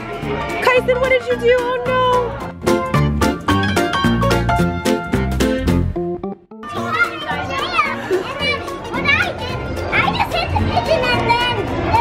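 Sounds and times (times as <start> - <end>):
background music: 0.0 - 12.0
young children playing and squealing: 6.6 - 12.0.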